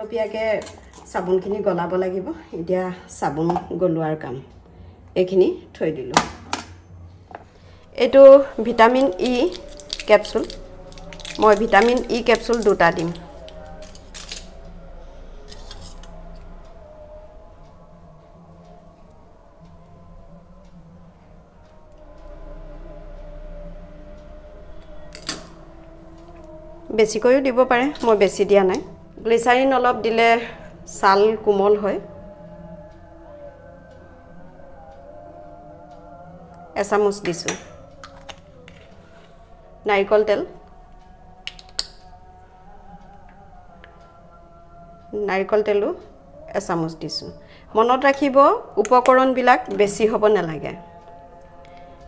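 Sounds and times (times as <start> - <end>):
faint background music: 0.0 - 52.0
faint wavering hum: 0.0 - 52.0
scissors clacking on stone countertop: 11.2 - 14.5, 37.3 - 38.9
plastic bottle cap snapping open: 41.5 - 42.0.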